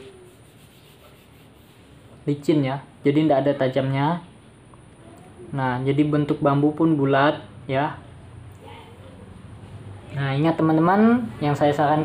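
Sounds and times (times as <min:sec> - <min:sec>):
fingers rubbing along bamboo: 0:00.0 - 0:02.0.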